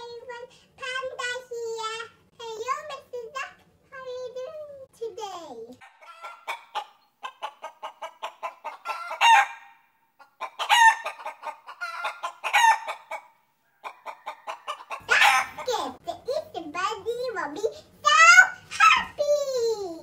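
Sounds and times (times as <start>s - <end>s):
hen squawking: 5.8s - 9.7s, 10.4s - 16.0s
hen clucking: 5.8s - 16.1s.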